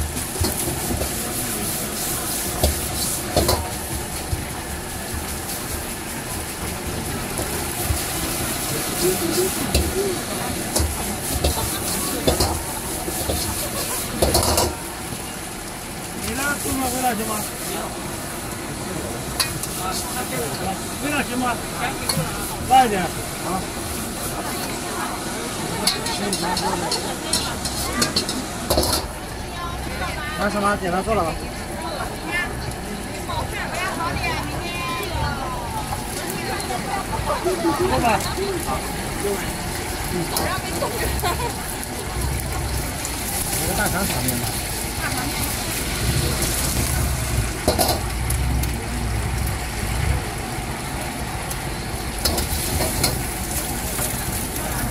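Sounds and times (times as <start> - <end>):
gas burner rushing rumble: 0.0 - 54.9
rice sizzling in a wok: 0.0 - 54.9
ladle clinking against wok: 10.7 - 14.8, 25.8 - 29.2.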